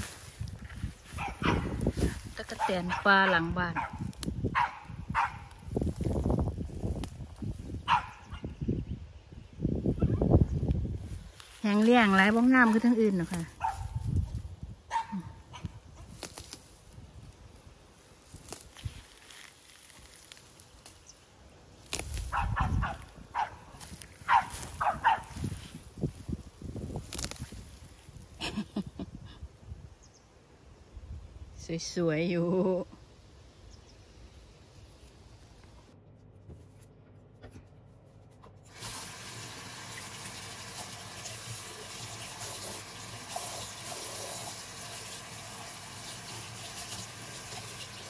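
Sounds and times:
rustling of plants being picked: 0.0 - 8.3, 9.6 - 29.5, 34.7 - 39.4
dog yipping: 1.2 - 1.8, 4.6 - 5.5, 7.9 - 8.5, 13.6 - 14.0, 14.9 - 15.7, 22.3 - 23.6, 24.3 - 25.3.

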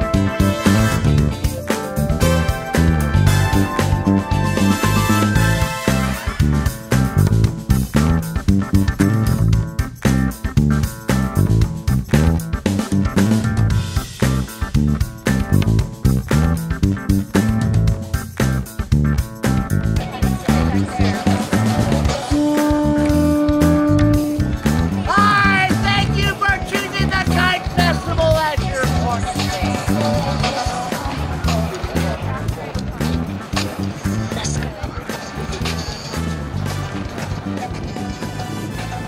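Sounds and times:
guitar and bass music with beat: 0.0 - 39.0.

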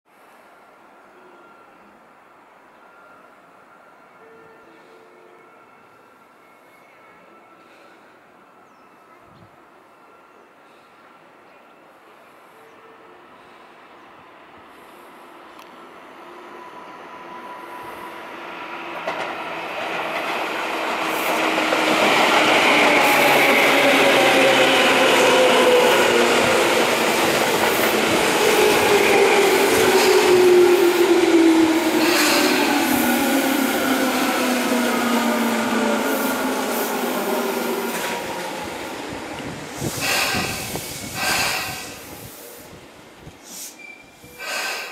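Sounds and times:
train wheels clacking: 39.4 - 42.0.

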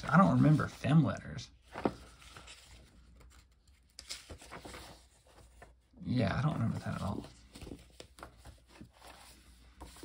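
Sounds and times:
paper rustling: 0.0 - 10.0.

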